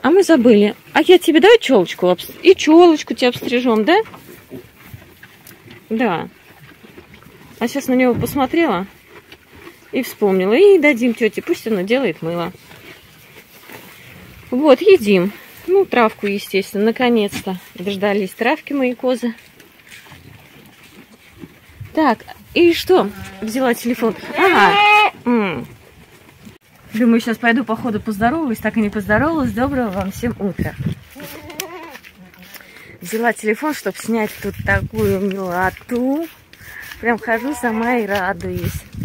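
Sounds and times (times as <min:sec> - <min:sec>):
woman's voice: 0:00.0 - 0:04.1, 0:05.9 - 0:06.3, 0:07.6 - 0:08.9, 0:09.9 - 0:12.6, 0:14.5 - 0:19.4, 0:21.9 - 0:25.7, 0:26.9 - 0:39.0
goats munching grass: 0:00.0 - 0:39.0
grass rustling: 0:00.0 - 0:39.0.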